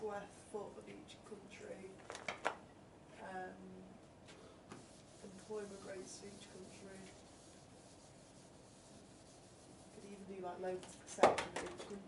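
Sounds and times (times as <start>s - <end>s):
whiteboard eraser rubbing: 4.7s - 10.4s.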